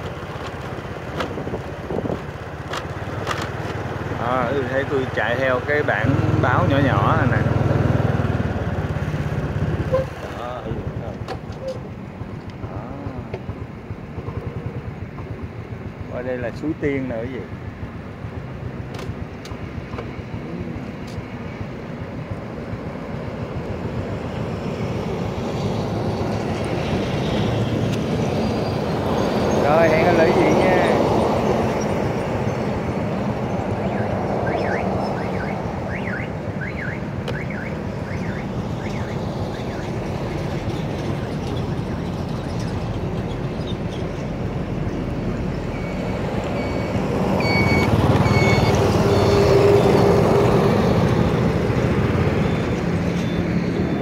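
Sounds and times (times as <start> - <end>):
passing traffic: 0.0 - 54.0
vehicle road noise: 0.0 - 54.0
short high beeps: 45.7 - 49.8.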